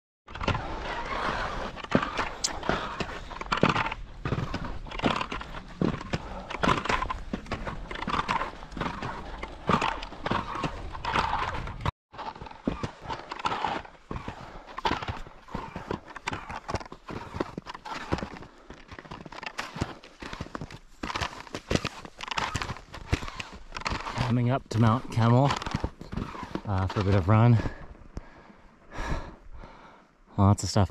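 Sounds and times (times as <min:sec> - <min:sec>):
ski poles planting: 0:00.3 - 0:28.3
skis crunching on snow: 0:00.5 - 0:28.4.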